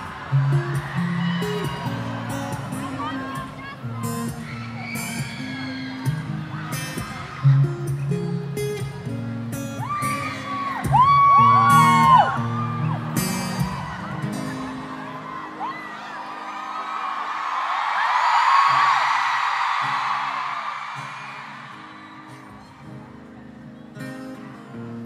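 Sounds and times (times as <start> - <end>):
acoustic guitar strumming: 0.0 - 16.5, 21.0 - 25.0
crowd screaming and whooping: 0.0 - 23.6.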